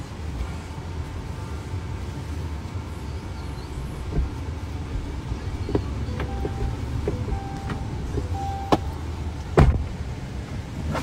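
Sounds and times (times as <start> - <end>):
vehicle rumble from inside cabin: 0.0 - 11.0.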